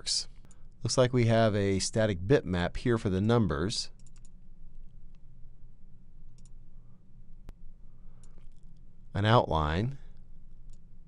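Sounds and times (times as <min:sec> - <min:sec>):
faint low hum: 0:00.0 - 0:11.0
computer mouse clicks: 0:04.0 - 0:05.2, 0:06.3 - 0:06.6, 0:08.2 - 0:08.9.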